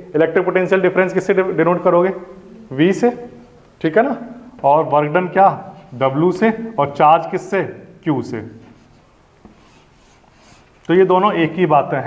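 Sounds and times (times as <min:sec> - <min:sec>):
chalk tap: 0:08.6 - 0:10.7
chalk scratching on chalkboard: 0:08.6 - 0:10.8.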